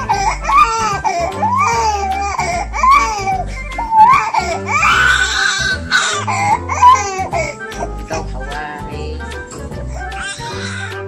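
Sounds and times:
baby crying: 0:00.0 - 0:08.6, 0:09.3 - 0:11.0
music playing: 0:00.0 - 0:11.0.

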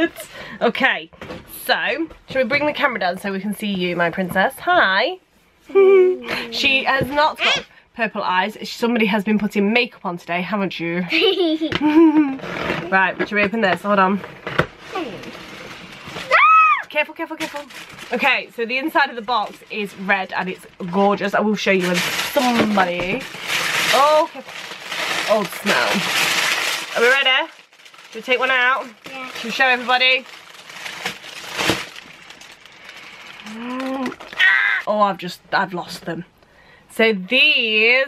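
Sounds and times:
packaging rustling: 0:14.3 - 0:34.9.

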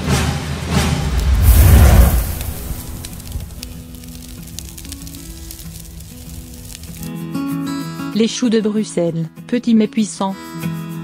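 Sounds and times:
loud rumbling burst: 0:00.8 - 0:07.1.

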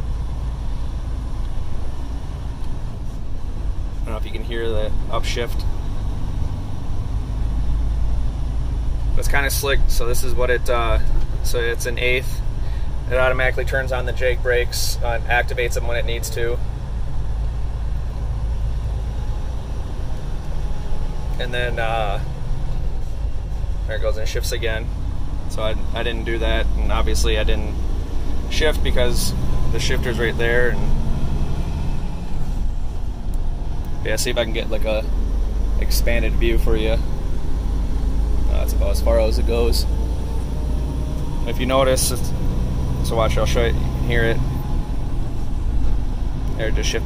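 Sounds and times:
diesel truck engine drone: 0:00.0 - 0:47.0
road noise inside cab: 0:00.0 - 0:47.0.

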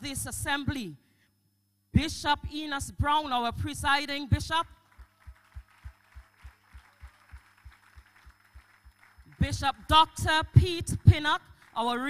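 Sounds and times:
dull low thumps of clapping: 0:04.9 - 0:09.6.

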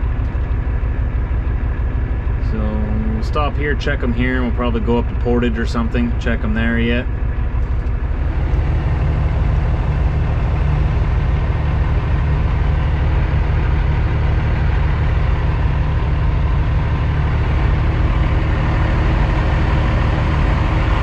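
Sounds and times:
diesel truck engine running: 0:00.0 - 0:21.0.

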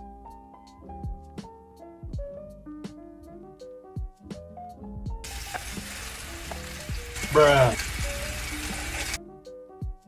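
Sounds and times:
background music with a beat: 0:00.0 - 0:10.0
pancake sizzling in oil: 0:05.2 - 0:09.2.

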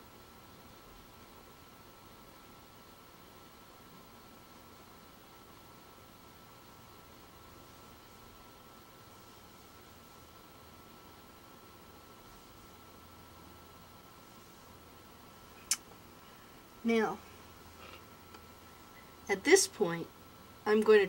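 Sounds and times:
faint steady hiss: 0:00.0 - 0:21.0.

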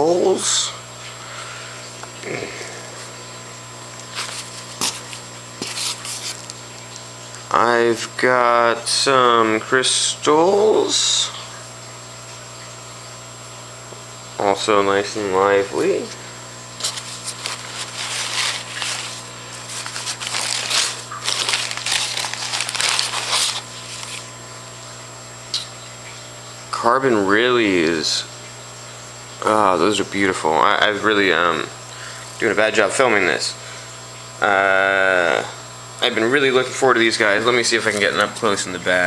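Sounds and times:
plastic bags rustling and crinkling: 0:04.0 - 0:07.0, 0:16.8 - 0:24.4.

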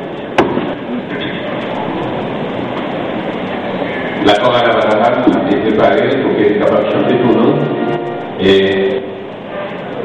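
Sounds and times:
recording hiss and room noise: 0:00.0 - 0:10.0.

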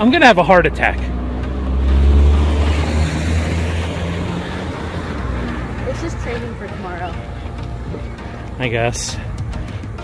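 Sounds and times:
car driving past: 0:00.7 - 0:08.5.

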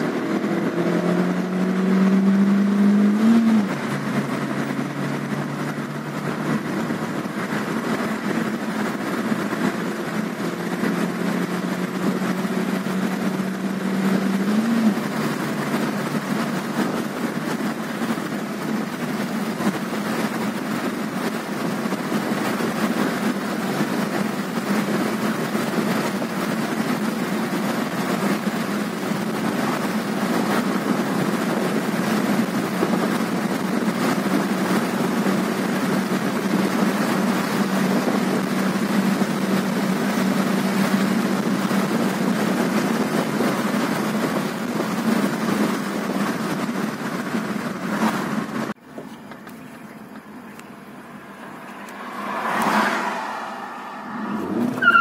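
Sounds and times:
car engine accelerating: 0:00.0 - 0:55.0
road and wind noise: 0:00.0 - 0:55.0.

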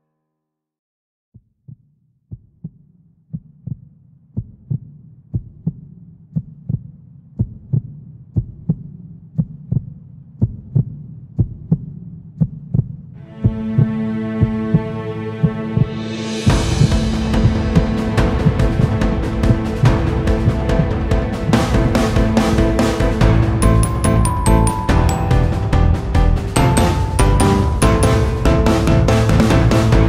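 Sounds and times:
instrumental music: 0:13.2 - 0:30.0
held synth tone: 0:23.6 - 0:29.0.

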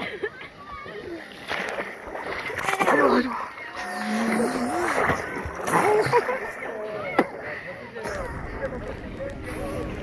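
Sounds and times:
people's voices: 0:00.0 - 0:10.0
water splashing around boat: 0:00.0 - 0:10.0.

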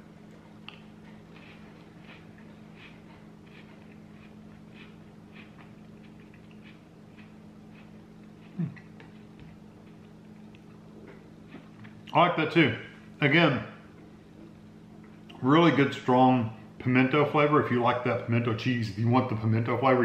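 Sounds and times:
steady low hum: 0:00.0 - 0:20.0
cracker chewing crunches: 0:00.2 - 0:10.9
person humming mm: 0:08.5 - 0:08.9.

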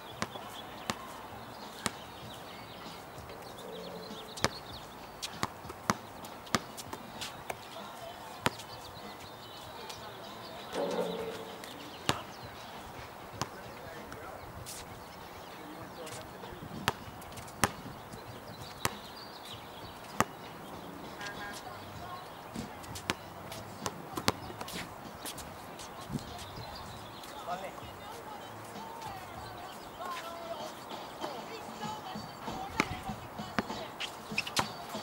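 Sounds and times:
faint distant voices: 0:00.0 - 0:35.0
outdoor background noise: 0:00.0 - 0:35.0
basketball bouncing on hard court: 0:10.8 - 0:12.3.

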